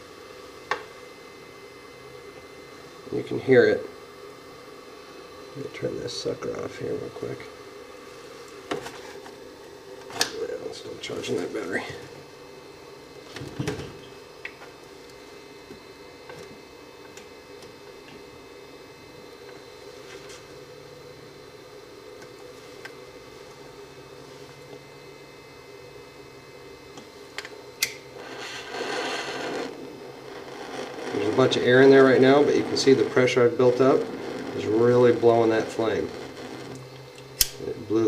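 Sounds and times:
steady low hum: 0.0 - 38.0
lighter clicks: 27.8 - 28.0, 37.4 - 37.6
gas hissing from torch: 27.8 - 38.0.

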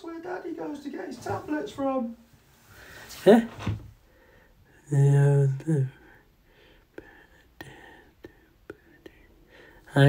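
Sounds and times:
faint whispering voice: 6.9 - 10.0.

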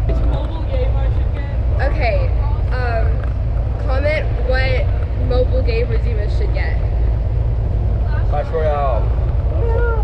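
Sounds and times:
bus engine rumble: 0.0 - 10.0.

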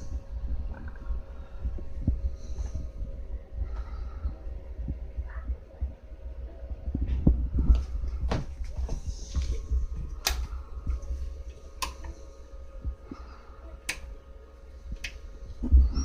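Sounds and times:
computer fans humming: 0.0 - 16.0.

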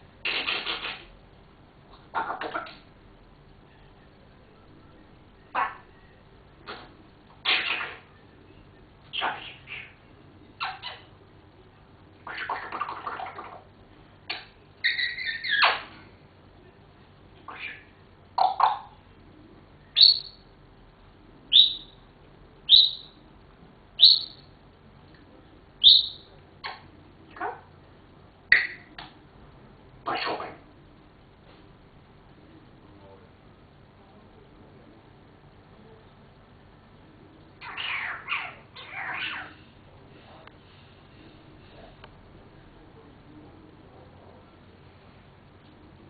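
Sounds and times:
parrot squawking: 0.2 - 1.1, 2.0 - 2.8, 5.5 - 5.9, 7.4 - 8.1, 9.1 - 10.0, 10.6 - 11.1, 12.2 - 13.6, 14.3 - 16.0, 17.5 - 19.0, 20.0 - 20.4, 21.5 - 22.0, 22.7 - 23.1, 24.0 - 24.4, 25.8 - 27.7, 28.5 - 28.9, 30.0 - 30.6, 37.6 - 39.7
parrot whistling: 20.0 - 20.4, 21.5 - 22.0, 22.7 - 23.2, 24.0 - 24.4, 25.8 - 26.3.

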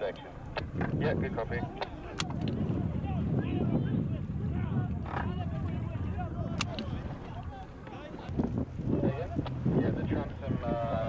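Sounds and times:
boat motor rumbling: 0.0 - 11.0
distant voices calling out: 0.0 - 11.0
wind buffeting microphone: 0.0 - 11.0.

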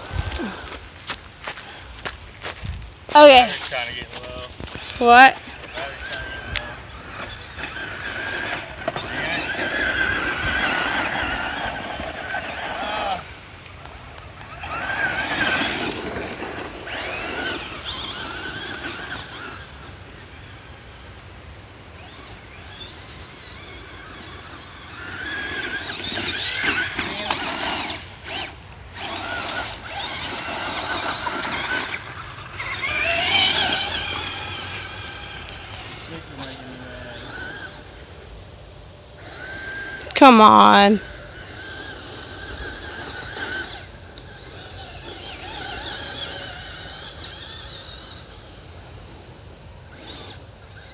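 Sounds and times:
electric toy truck motor whining: 3.2 - 50.9.

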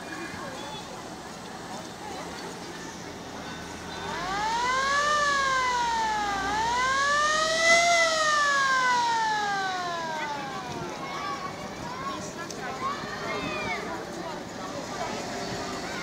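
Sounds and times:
fire engine siren wailing: 3.9 - 11.6.

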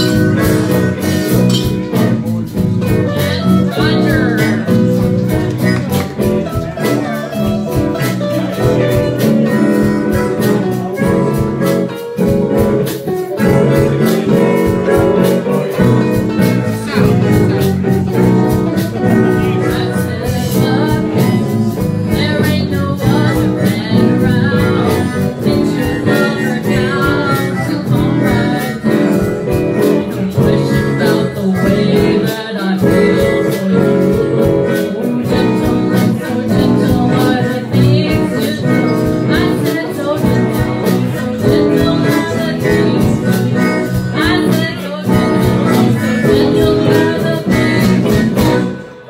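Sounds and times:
blues band playing: 0.0 - 49.0
harmonica: 23.1 - 49.0.

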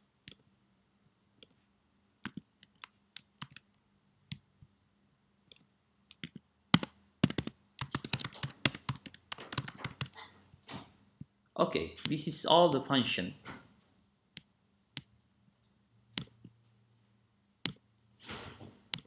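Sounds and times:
computer keyboard typing: 2.2 - 3.7, 5.5 - 10.3.

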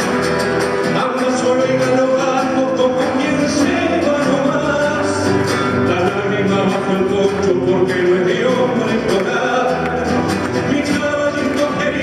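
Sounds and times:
classical guitar: 0.0 - 12.0
man singing folk song: 0.0 - 12.0.

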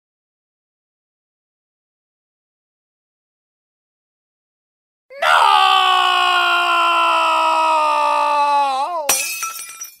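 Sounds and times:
smash with shattering glass: 9.1 - 10.0.

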